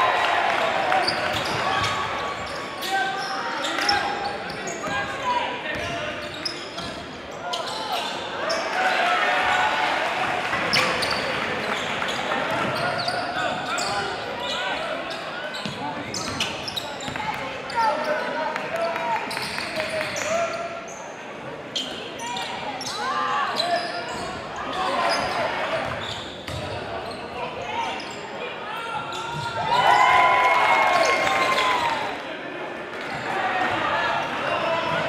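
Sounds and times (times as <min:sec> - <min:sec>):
sneakers squeaking: 0:00.9 - 0:08.8, 0:10.6 - 0:18.4, 0:21.7 - 0:29.8.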